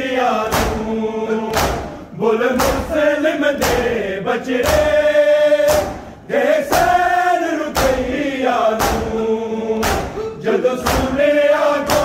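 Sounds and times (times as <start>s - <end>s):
men chanting a lament: 0.0s - 12.0s
hands striking chests: 1.5s - 2.0s, 9.8s - 10.2s.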